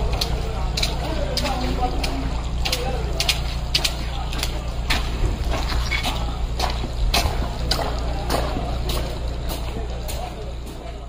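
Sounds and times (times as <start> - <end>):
large vehicle engine running: 0.0 - 11.0.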